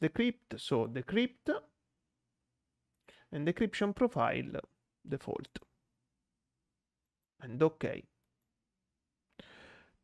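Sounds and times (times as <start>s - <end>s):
soft in-breath: 9.3s - 10.0s.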